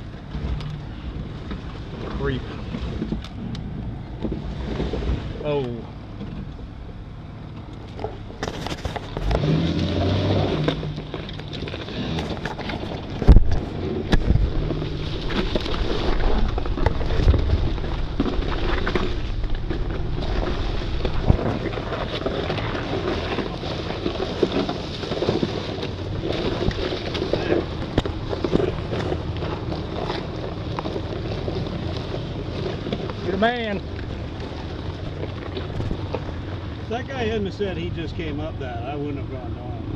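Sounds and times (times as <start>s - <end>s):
vehicle engine running low: 0.0s - 39.9s
tyres grinding over loose rock: 7.6s - 38.3s.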